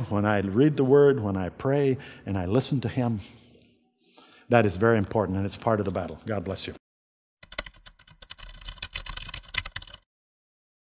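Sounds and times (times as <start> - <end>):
typing clicks: 7.4 - 10.0.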